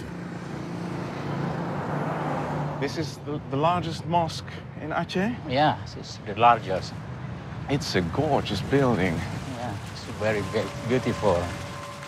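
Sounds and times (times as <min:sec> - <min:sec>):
vehicle engine hum with road noise: 0:00.0 - 0:12.0.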